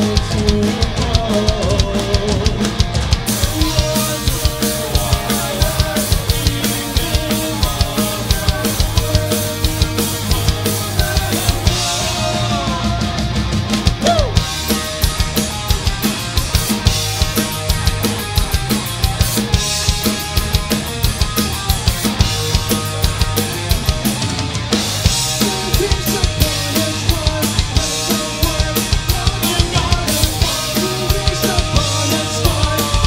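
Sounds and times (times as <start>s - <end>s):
rapid bass drum and snare hits: 0.0s - 33.0s
rock band playing live: 0.0s - 33.0s.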